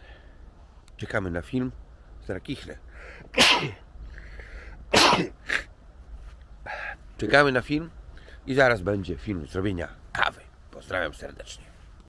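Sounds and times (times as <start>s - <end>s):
man sneezing: 3.4s - 3.8s, 4.9s - 5.7s.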